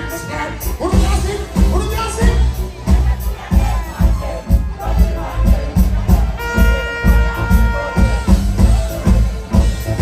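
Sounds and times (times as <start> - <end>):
reggae bass and drum groove: 0.0 - 10.0.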